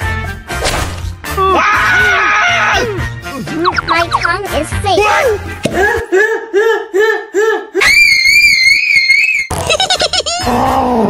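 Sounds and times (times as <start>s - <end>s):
squeaky sped-up vocal sounds: 3.5s - 4.5s
high-pitched voice scream: 7.8s - 9.5s.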